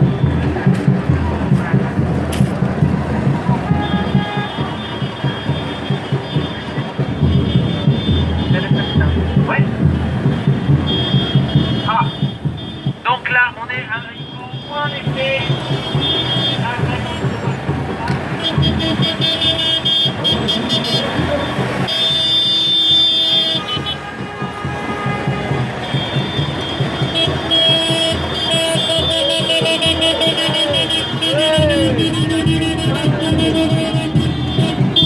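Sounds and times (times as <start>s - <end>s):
music: 0.0s - 35.0s
voices: 0.0s - 35.0s
vehicle horns tooting: 3.5s - 35.0s.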